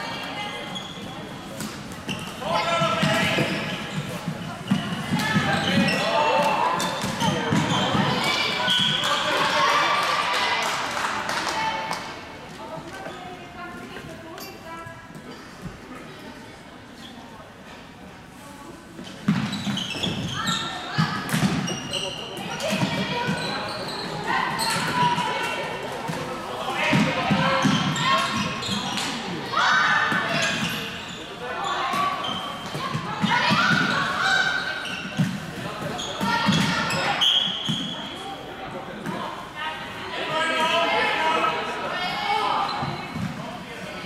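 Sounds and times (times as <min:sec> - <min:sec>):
voices calling out in echoing hall: 0:00.0 - 0:44.0
ball on court floor: 0:01.5 - 0:09.2, 0:19.0 - 0:29.2, 0:34.8 - 0:38.0.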